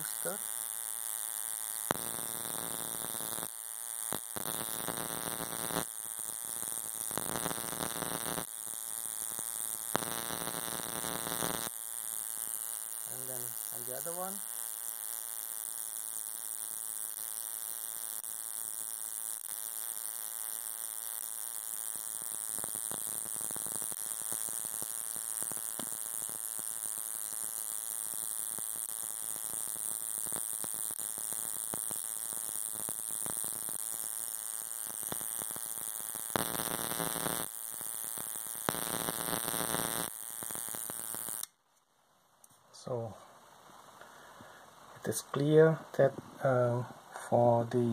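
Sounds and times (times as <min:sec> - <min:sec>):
crackle of high-voltage sparks: 0:00.0 - 0:41.6
steady high-pitched whine: 0:00.0 - 0:41.6.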